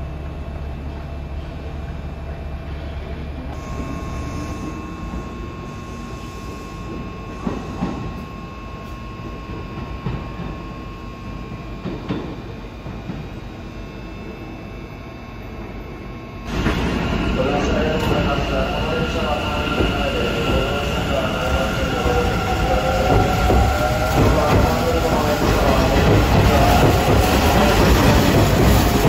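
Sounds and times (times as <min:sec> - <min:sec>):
train low rumble: 0:00.0 - 0:29.0
thin steady whine: 0:03.2 - 0:29.0.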